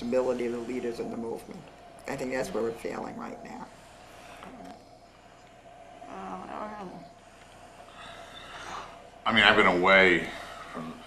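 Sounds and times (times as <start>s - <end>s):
faint wavering vocal sound: 6.0s - 7.2s.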